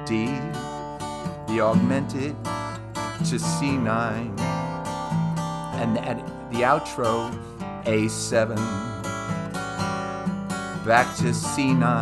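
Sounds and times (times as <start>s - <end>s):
acoustic guitar strumming: 0.0s - 12.0s.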